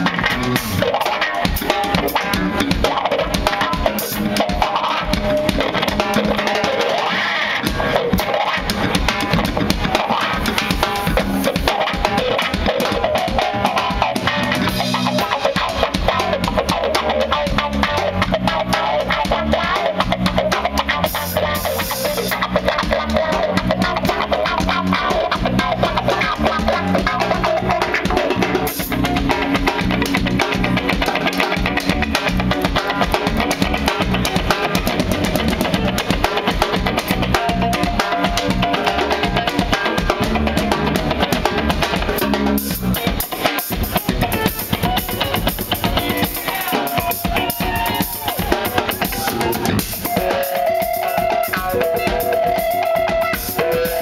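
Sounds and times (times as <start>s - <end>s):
bass guitar: 0.0s - 54.0s
busy drum kit: 0.0s - 54.0s
electric guitar: 0.0s - 54.0s.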